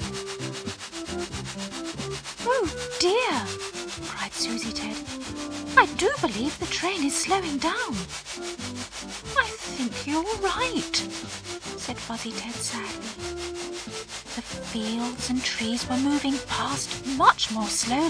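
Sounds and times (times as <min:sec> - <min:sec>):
steam train chuffing: 0:00.0 - 0:18.0.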